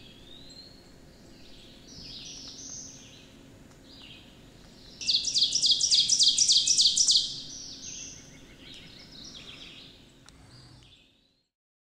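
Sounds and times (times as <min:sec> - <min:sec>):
faint bird song: 0:00.0 - 0:11.5
songbird singing high notes: 0:05.0 - 0:08.8.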